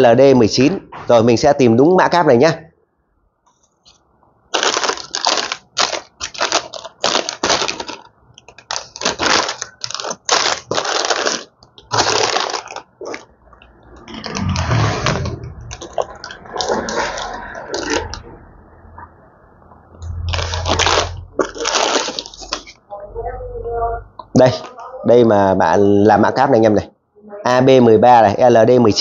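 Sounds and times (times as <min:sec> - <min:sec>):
plastic bags crinkling: 0:04.5 - 0:18.3, 0:20.2 - 0:22.8.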